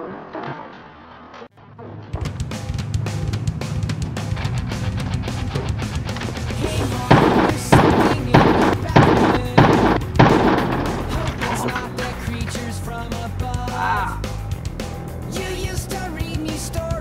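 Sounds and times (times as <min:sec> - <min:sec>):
heavy stabbed chords with crashes: 0:02.1 - 0:17.0
rock music: 0:02.2 - 0:17.0.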